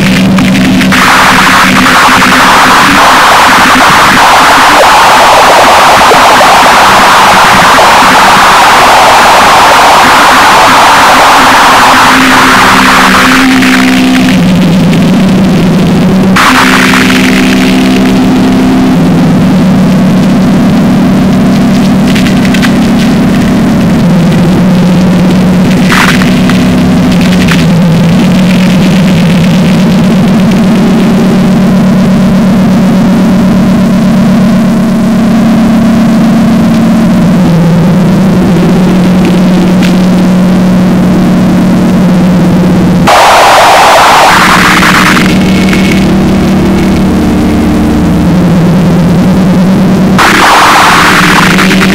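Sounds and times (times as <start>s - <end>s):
short noisy crashes: 0.0s - 15.3s, 16.4s - 18.3s
heavily distorted electric guitar: 0.0s - 51.9s.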